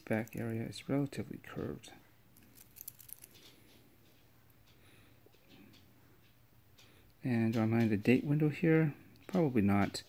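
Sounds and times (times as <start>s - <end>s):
watch bracelet clinking: 2.4s - 3.6s.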